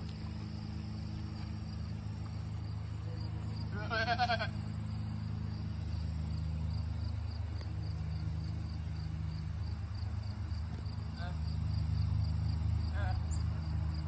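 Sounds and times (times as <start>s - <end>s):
crickets chirping: 0.0s - 14.0s
steady low hum: 0.0s - 14.0s.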